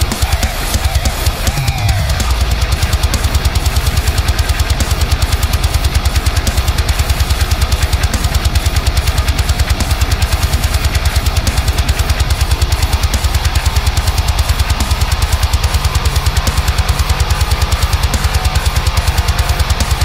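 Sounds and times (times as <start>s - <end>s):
fast double-kick drums: 0.0s - 20.0s
palm-muted electric guitar chugs: 0.0s - 20.0s.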